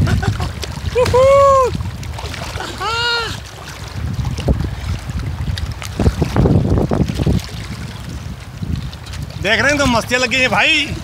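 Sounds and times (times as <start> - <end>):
water sloshing and splashing: 0.0 - 11.0
wind rumbling on microphone: 0.0 - 11.0.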